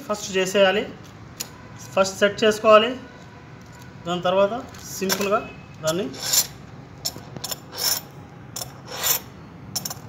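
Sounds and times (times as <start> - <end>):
file rasping on saw chain: 6.1 - 6.6, 7.5 - 9.3.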